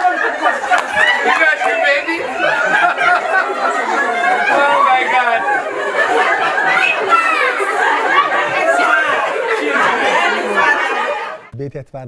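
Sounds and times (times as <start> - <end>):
women chattering: 0.0 - 11.5.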